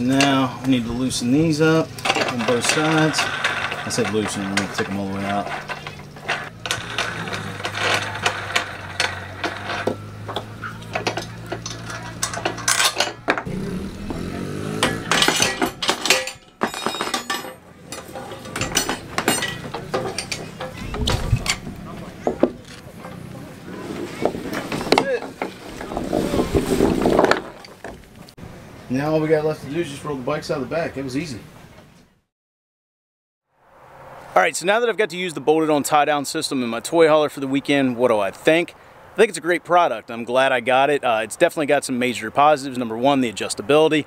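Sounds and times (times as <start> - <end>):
metal clinks and knocks: 1.9 - 23.4.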